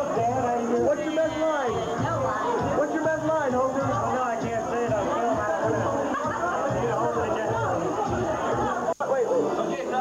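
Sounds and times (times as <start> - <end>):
background music: 0.0 - 8.9
people chattering: 0.0 - 10.0.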